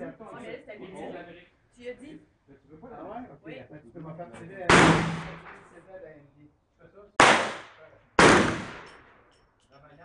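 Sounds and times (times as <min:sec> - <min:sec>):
pistol shots with echo: 0:04.7 - 0:05.8, 0:07.2 - 0:09.2.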